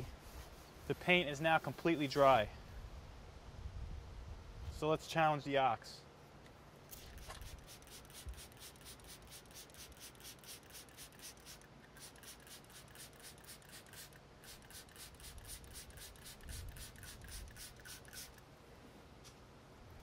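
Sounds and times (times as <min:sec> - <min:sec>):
spray bottle squirting: 0:06.9 - 0:18.4.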